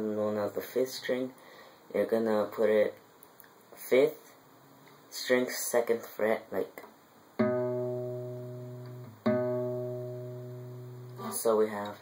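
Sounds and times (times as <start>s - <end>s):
acoustic guitar note ringing: 7.4s - 11.4s.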